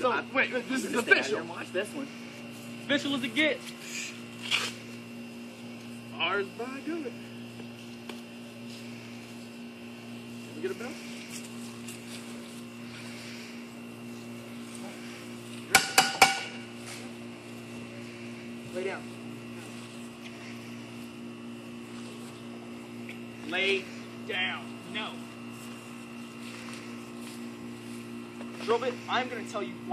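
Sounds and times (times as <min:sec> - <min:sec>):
steady low hum: 0:00.0 - 0:29.9.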